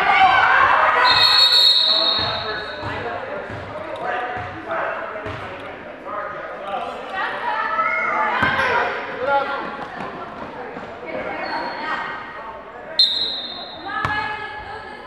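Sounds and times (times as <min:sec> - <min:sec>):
referee's whistle blast: 0:01.0 - 0:02.8, 0:13.0 - 0:13.9
basketball bouncing: 0:02.2 - 0:03.8, 0:05.2 - 0:05.5.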